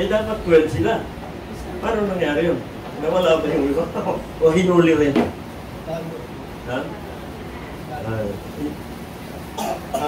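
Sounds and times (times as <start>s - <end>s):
person coughing: 9.6s - 10.0s.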